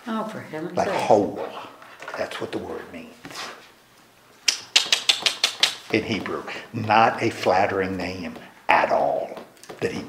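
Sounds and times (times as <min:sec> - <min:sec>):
sharp clicks: 0:04.5 - 0:05.8.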